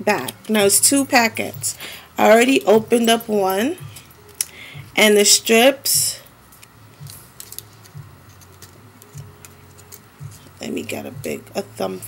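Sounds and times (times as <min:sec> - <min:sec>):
low steady hum: 0:00.0 - 0:12.0
packet clicks and crinkles: 0:06.6 - 0:10.5.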